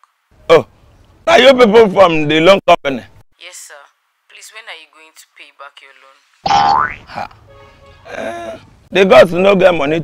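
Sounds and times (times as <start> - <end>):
cartoon boing rising in pitch: 6.5 - 7.2.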